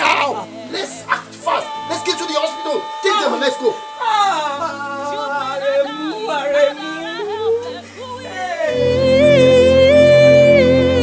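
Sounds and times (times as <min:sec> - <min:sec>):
low sustained musical score: 0:00.3 - 0:11.0.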